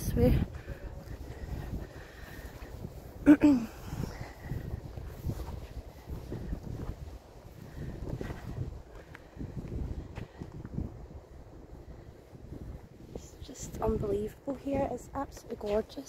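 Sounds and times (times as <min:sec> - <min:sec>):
wind rumbling on microphone: 0:00.0 - 0:16.0
soft footsteps: 0:00.2 - 0:10.9.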